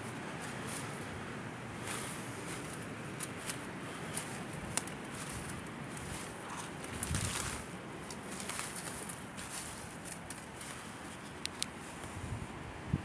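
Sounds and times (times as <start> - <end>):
footsteps through dry leaves: 0.2 - 11.3
twig snaps: 4.2 - 5.4.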